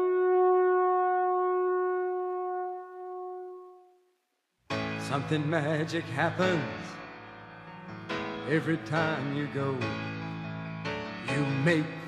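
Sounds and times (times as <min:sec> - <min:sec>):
long held brass note: 0:00.0 - 0:04.1.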